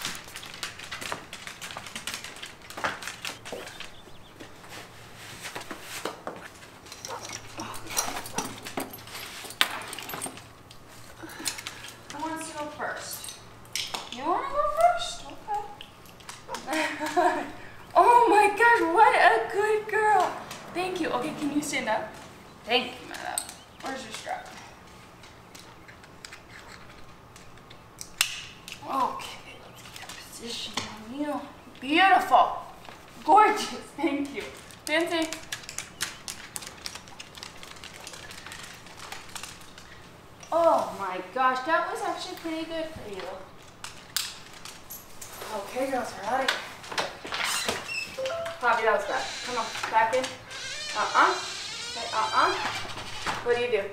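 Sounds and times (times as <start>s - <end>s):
dog claws clicking on wood floor: 0.0s - 4.5s, 6.0s - 17.4s, 23.1s - 29.1s, 32.8s - 40.6s, 43.2s - 53.6s
person's voice: 18.0s - 22.1s.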